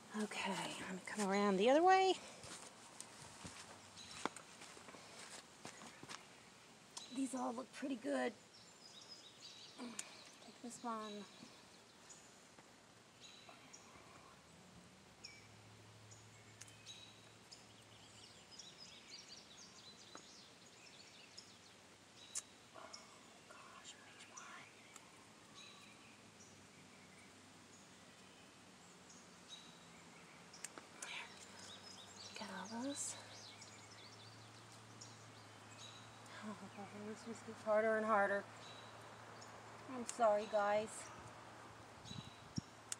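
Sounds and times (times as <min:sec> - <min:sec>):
soft clicks of snipping: 0:09.8 - 0:10.4, 0:24.8 - 0:25.2, 0:30.6 - 0:31.7.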